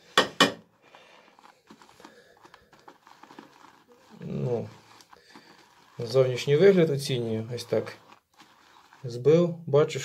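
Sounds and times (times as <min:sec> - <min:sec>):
shaving brush whipping lather: 0:01.3 - 0:09.6.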